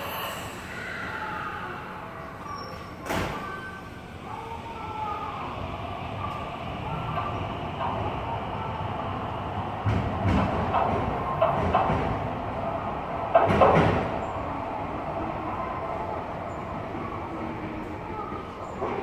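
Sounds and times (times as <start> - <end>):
electric train running noise: 0.0 - 19.0
wheels clattering over rails: 9.7 - 14.4.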